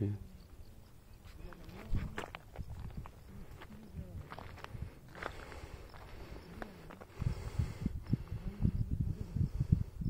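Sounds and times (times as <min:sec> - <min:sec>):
footsteps on gritty ground: 0:01.2 - 0:07.4.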